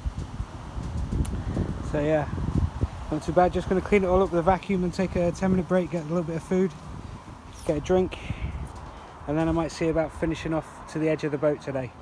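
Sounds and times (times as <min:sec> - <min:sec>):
wind rumble on microphone: 0:00.0 - 0:10.7
man speaking: 0:07.6 - 0:08.6, 0:09.2 - 0:12.0.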